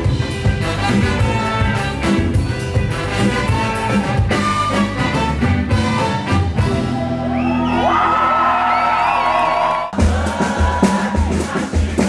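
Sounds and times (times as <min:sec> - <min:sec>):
drum groove: 0:00.0 - 0:07.0, 0:09.9 - 0:12.0
live band playing: 0:00.0 - 0:12.0
crowd whooping and yelling: 0:06.6 - 0:11.7.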